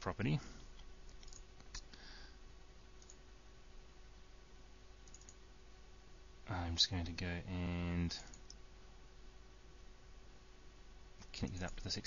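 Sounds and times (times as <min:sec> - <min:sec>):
faint room hiss: 0:00.0 - 0:12.0
computer mouse clicks: 0:00.8 - 0:02.0, 0:03.0 - 0:03.2, 0:05.0 - 0:05.4, 0:08.3 - 0:08.6, 0:11.2 - 0:12.0.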